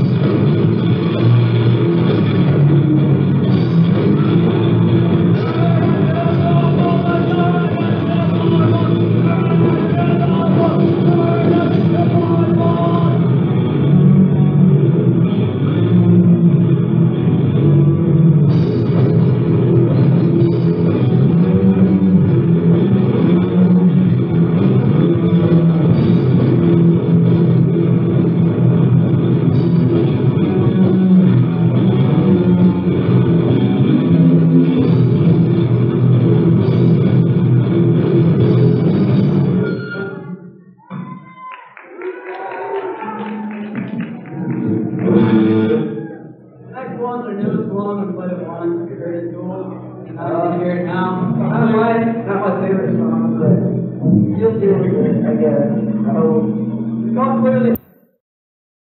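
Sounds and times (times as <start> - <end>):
drum kit: 0.0 - 13.4, 17.6 - 39.5
electric guitar: 0.0 - 46.4.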